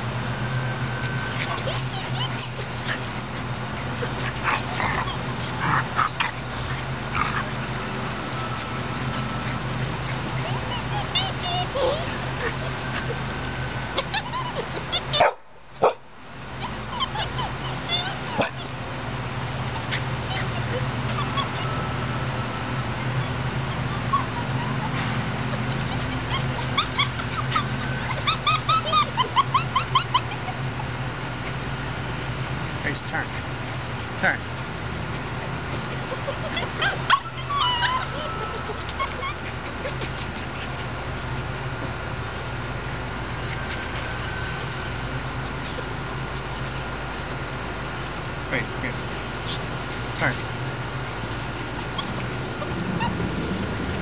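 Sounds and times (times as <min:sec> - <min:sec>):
steady low hum: 0:00.0 - 0:23.2
puppies yipping and whimpering: 0:00.0 - 0:54.0.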